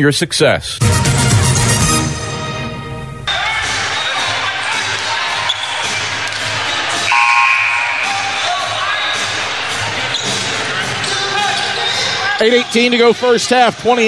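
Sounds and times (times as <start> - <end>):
crowd chatter: 3.3 - 14.0
short buzzer: 7.1 - 8.5.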